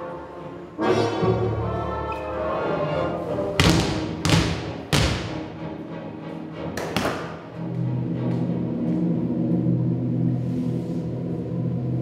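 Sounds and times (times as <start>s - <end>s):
background music: 0.0s - 12.0s
basketballs bouncing on wooden floor: 3.6s - 5.5s.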